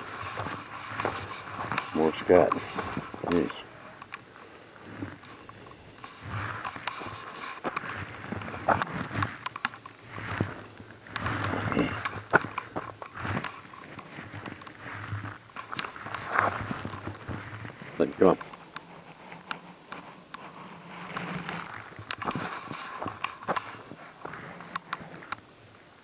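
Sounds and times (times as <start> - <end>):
footsteps crunching on frozen ground: 0.0 - 26.0.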